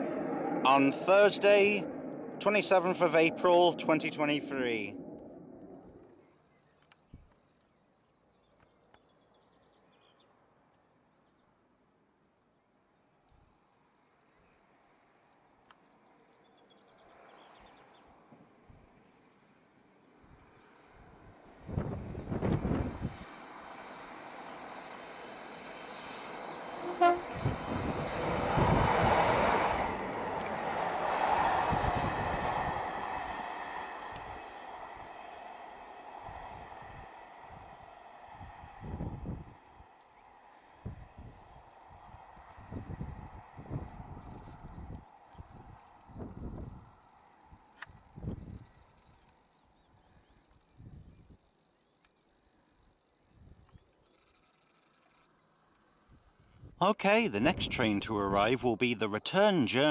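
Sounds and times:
train engine and wheels rumbling: 20.2s - 49.4s
wind buffeting microphone: 20.3s - 23.4s, 26.8s - 39.9s, 40.8s - 49.2s, 50.7s - 51.5s
train horn toot: 26.8s - 27.6s.

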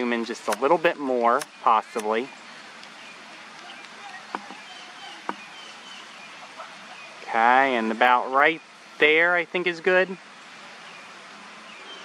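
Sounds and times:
distant bird chirps: 0.0s - 12.0s
faint outdoor background: 0.0s - 12.0s.

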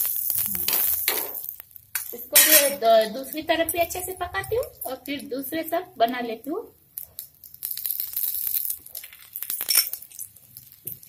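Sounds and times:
faint sizzling from a pan: 0.0s - 4.3s, 4.9s - 11.0s
spoon and glass bowl clinking: 2.3s - 3.0s.

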